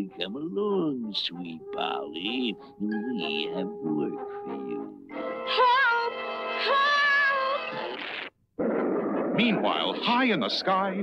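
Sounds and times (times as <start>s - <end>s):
man narrating: 0.0s - 5.0s, 9.4s - 11.0s
held music chord: 0.0s - 5.1s.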